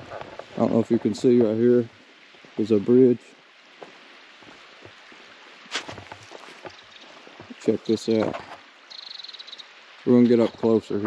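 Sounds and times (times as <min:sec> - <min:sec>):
creek running over rocks: 0:00.0 - 0:11.0
footsteps on dry leaves and gravel: 0:03.7 - 0:08.6
sharp crunch: 0:05.7 - 0:06.7.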